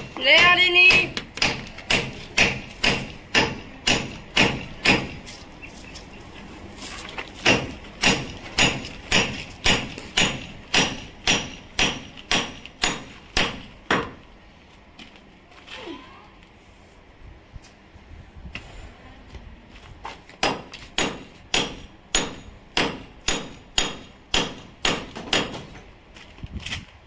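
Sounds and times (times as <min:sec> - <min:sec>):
hammer striking steel bar: 0:00.0 - 0:05.2, 0:07.4 - 0:14.2, 0:20.4 - 0:25.6.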